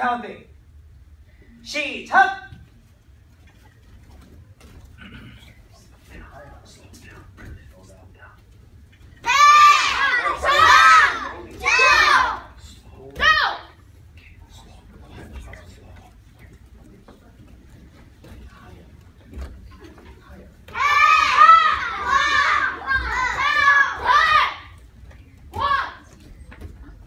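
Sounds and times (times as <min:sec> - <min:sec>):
children shouting in unison: 0:09.2 - 0:12.4, 0:20.7 - 0:24.7.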